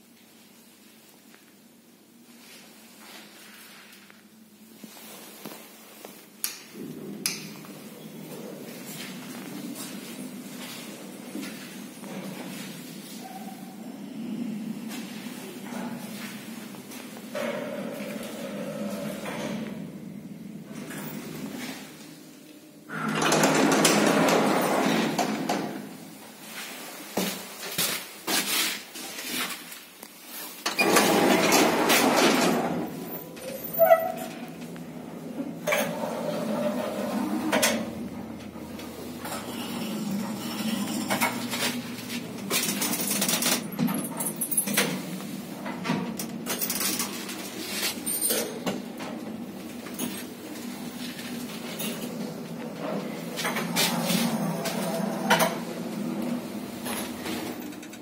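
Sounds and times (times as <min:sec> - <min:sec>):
elevator running: 0:06.7 - 0:26.6, 0:30.7 - 0:58.0.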